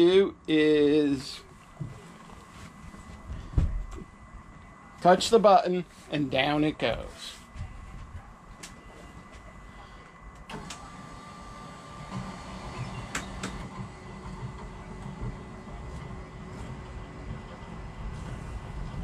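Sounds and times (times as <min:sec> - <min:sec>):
electric lift motor humming: 0:10.2 - 0:19.0.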